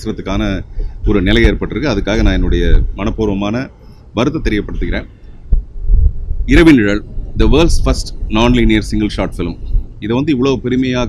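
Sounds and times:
man speaking: 0:00.0 - 0:05.2, 0:06.5 - 0:11.0.

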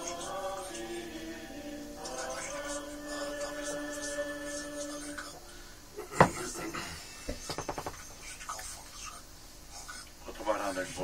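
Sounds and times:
church music held notes: 0:00.0 - 0:05.7.

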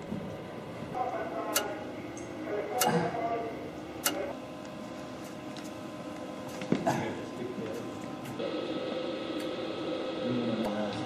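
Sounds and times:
radio equipment hum: 0:00.0 - 0:11.0
low indistinct voices: 0:00.8 - 0:04.5
sharp clicks: 0:04.0 - 0:04.2.

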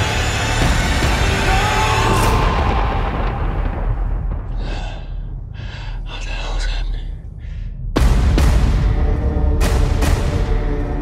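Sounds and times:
low rumble: 0:00.0 - 0:11.0.

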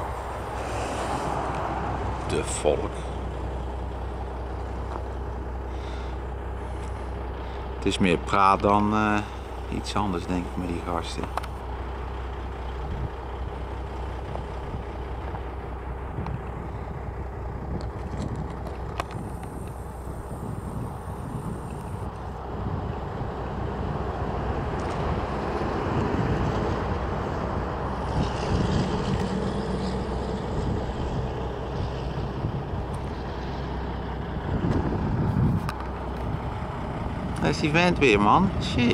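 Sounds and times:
highway traffic rumble: 0:00.0 - 0:38.9
truck passing: 0:00.0 - 0:38.9.

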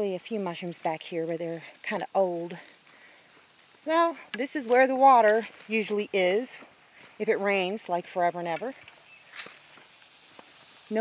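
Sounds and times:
footsteps on leaves and twigs: 0:00.0 - 0:11.0.

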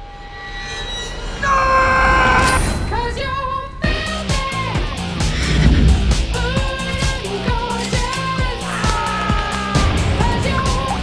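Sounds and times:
rumbling swell of noise: 0:01.0 - 0:07.6.

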